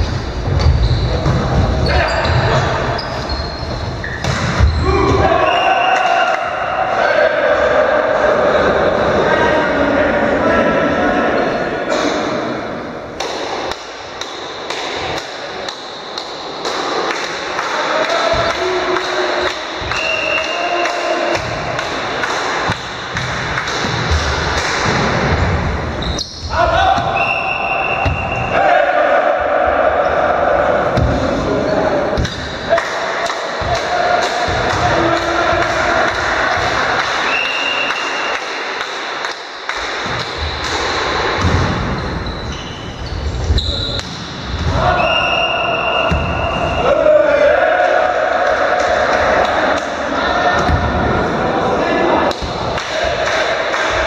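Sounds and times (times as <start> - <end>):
players calling out: 0.6 - 13.2, 40.4 - 54.0
volleyball thuds: 46.0 - 46.8, 50.5 - 51.2.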